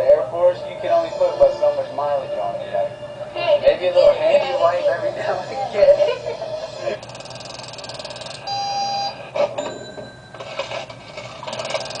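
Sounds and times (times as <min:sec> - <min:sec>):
rapid buzzing ring: 0:05.2 - 0:10.3
steady electronic beep: 0:07.1 - 0:10.4.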